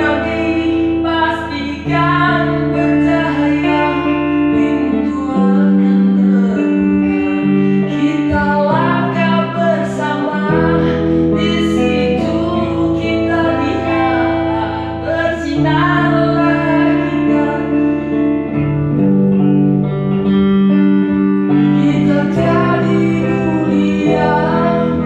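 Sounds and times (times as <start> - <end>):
man singing into microphone: 0.0 - 18.2, 21.6 - 25.0
electric guitar chords: 0.0 - 25.0.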